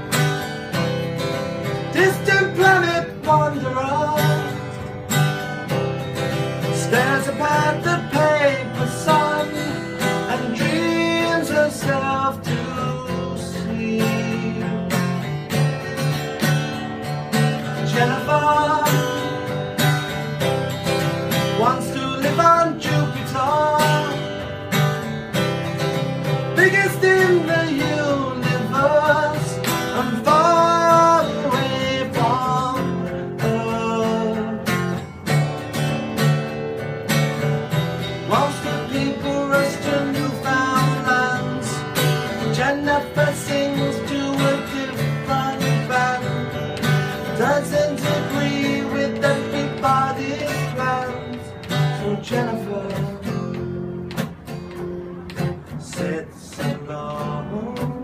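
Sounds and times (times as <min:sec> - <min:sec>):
acoustic guitar strumming: 0:00.0 - 0:58.0
man singing: 0:01.6 - 0:04.8, 0:06.5 - 0:15.6, 0:17.4 - 0:19.8, 0:21.3 - 0:24.6, 0:26.3 - 0:35.1, 0:38.2 - 0:54.4, 0:55.0 - 0:58.0.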